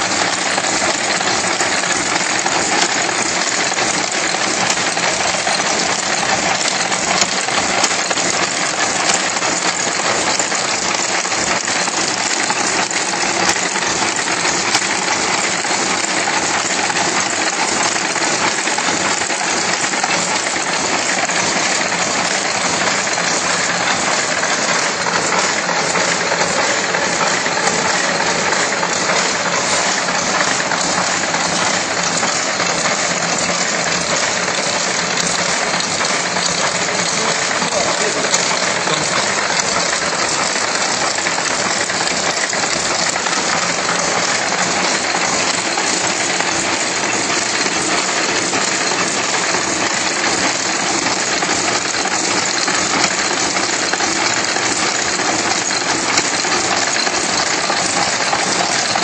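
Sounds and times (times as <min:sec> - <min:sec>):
machine clattering: 0:00.0 - 0:59.0.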